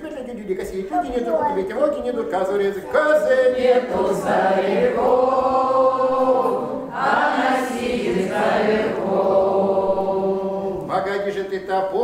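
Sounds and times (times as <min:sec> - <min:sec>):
voices chanting a nursery rhyme: 0:02.8 - 0:10.9.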